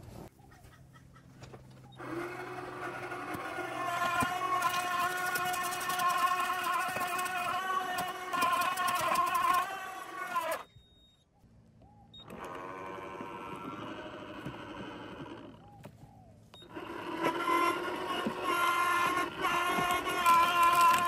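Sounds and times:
shredder motor whining: 2.0 - 10.7, 12.2 - 15.8, 16.6 - 21.0.

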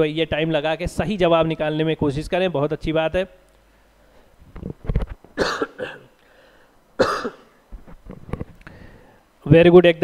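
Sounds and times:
man coughing: 5.4 - 6.1, 7.0 - 7.6.

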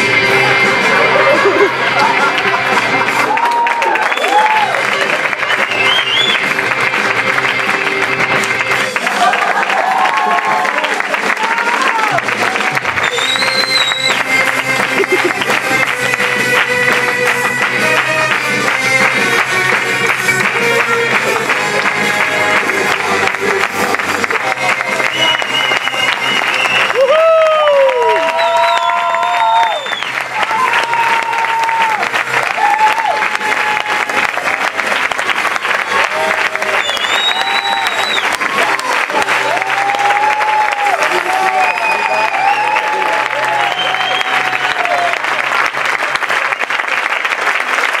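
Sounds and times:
music playing: 0.0 - 46.5
audience applauding: 0.0 - 48.0.

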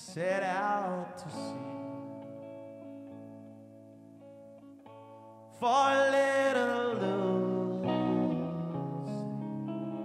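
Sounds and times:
guitar chords: 0.0 - 10.0.

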